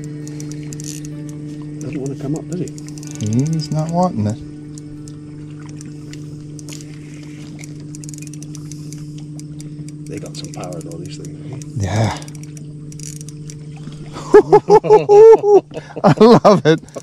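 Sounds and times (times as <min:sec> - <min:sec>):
boat motor humming: 0:00.0 - 0:17.0.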